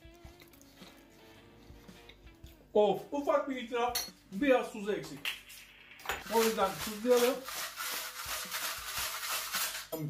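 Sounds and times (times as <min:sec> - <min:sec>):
salt grinder rasping rattle: 0:06.2 - 0:09.9.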